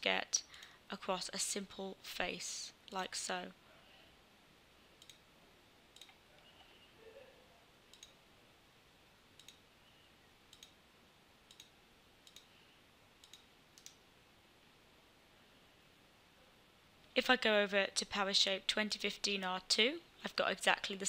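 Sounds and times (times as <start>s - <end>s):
faint computer mouse clicks: 5.0s - 5.2s, 7.9s - 8.2s, 9.4s - 9.6s, 10.5s - 10.8s, 11.5s - 12.5s, 13.2s - 14.0s.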